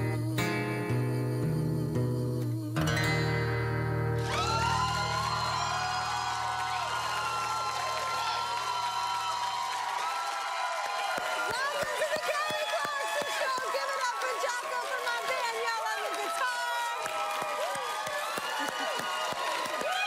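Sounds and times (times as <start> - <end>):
acoustic guitar chords: 0.0 - 6.3
audience cheering and applause: 4.2 - 20.0.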